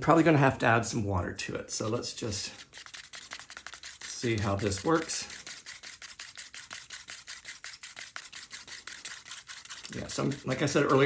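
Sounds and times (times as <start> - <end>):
stirrer scraping plastic cup: 1.8 - 11.0.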